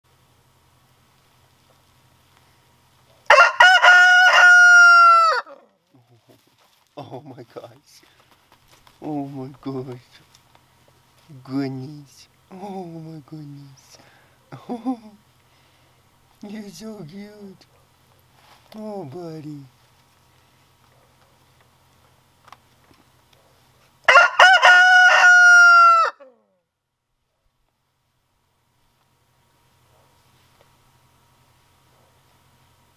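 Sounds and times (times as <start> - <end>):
rooster crowing: 3.2 - 5.7, 24.0 - 26.6.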